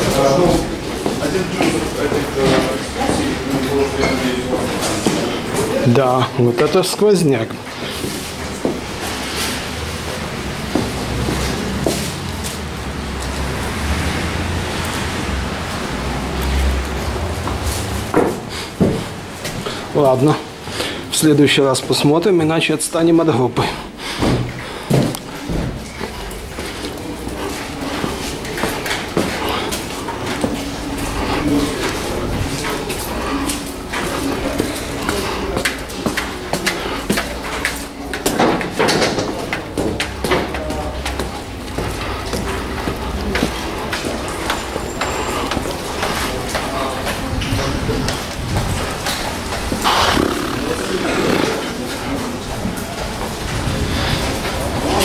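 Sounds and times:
footsteps on stairs: 0.0s - 5.7s, 6.5s - 13.4s, 17.4s - 19.9s, 23.6s - 47.3s, 48.0s - 54.6s
indistinct voices: 40.2s - 55.0s.

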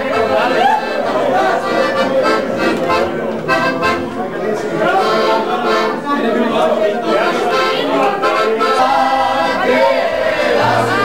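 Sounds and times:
accordion: 0.0s - 11.0s
men singing in chorus: 6.4s - 11.0s.

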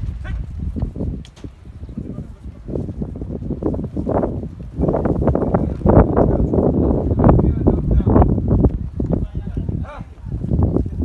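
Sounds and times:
cattle hooves on dry dirt: 0.0s - 11.0s.

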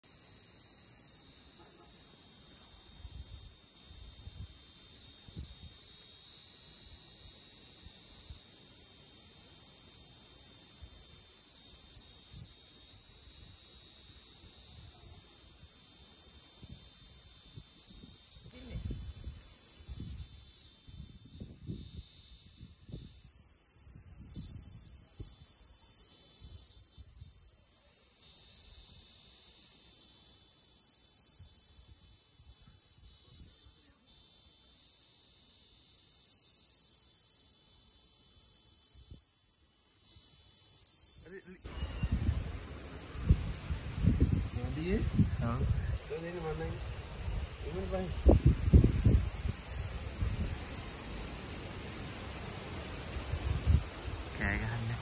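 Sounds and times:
cicada buzzing: 0.0s - 55.0s.

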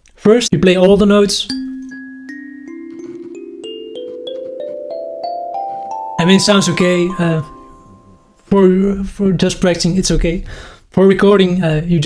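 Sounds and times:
kalimba tines plucked: 1.5s - 8.4s.

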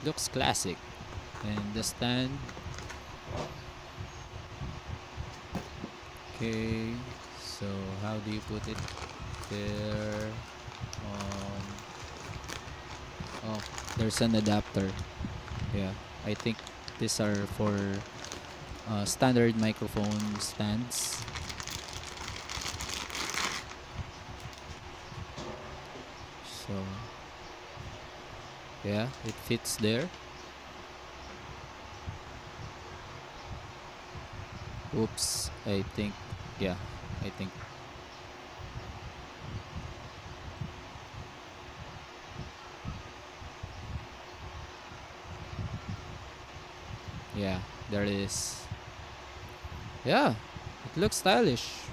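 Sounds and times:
faint steady hum: 0.0s - 51.9s
rustling and scraping handling noise: 1.1s - 3.6s, 5.3s - 26.2s.

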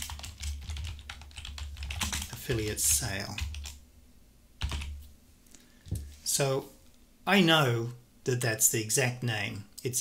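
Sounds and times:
computer keyboard keystrokes: 0.0s - 3.8s, 4.6s - 5.0s.

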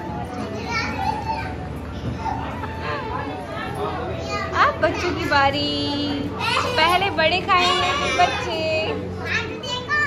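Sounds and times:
women and children talking: 0.0s - 10.0s.

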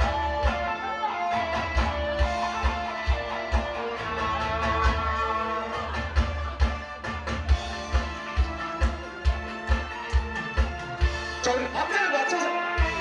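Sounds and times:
electric guitar melody: 0.0s - 11.5s.

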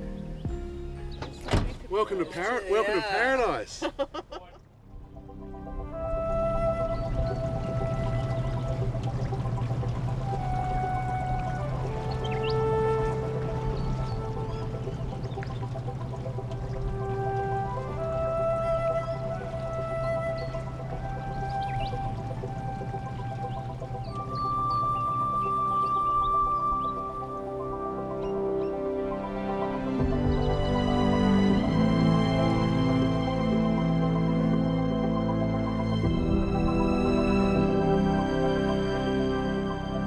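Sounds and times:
slow ambient music: 0.0s - 3.6s, 4.6s - 40.0s.

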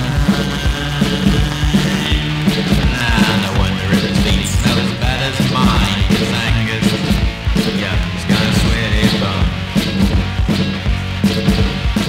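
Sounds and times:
fast drum beat: 0.0s - 12.0s
punk rock band music: 0.0s - 12.0s.

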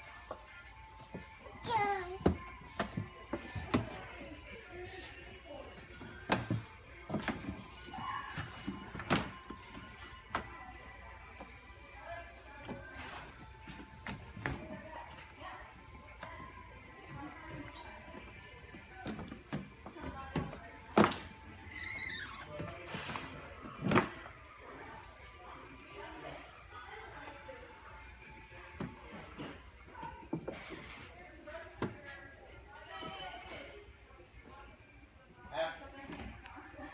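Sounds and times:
background music: 0.0s - 36.0s
faint voices: 0.0s - 36.9s.

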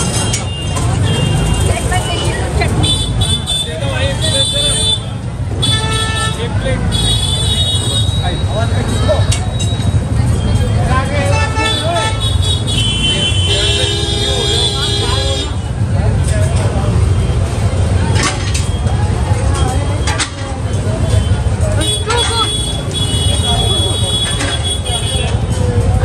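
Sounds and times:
vehicle horns honking: 0.0s - 9.3s, 11.2s - 15.8s, 21.0s - 25.4s
traffic rumble: 0.0s - 26.0s.

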